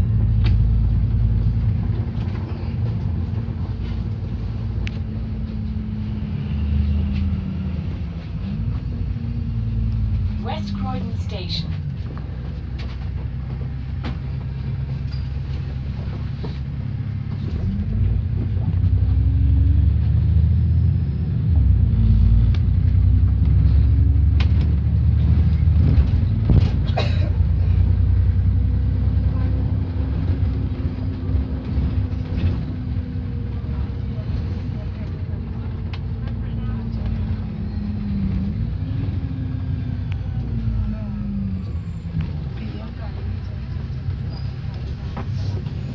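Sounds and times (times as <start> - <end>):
bus engine drone: 0.0 - 45.9
bus body knocks and rattles: 12.0 - 18.8, 24.3 - 27.5.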